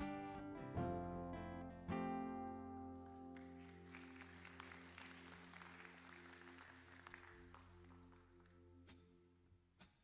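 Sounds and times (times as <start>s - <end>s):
congregation applauding: 2.9s - 8.7s.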